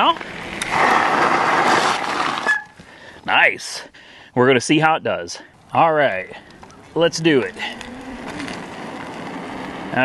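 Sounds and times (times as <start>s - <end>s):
bike tyres crunching on gravel: 0.0s - 3.3s, 6.0s - 10.0s.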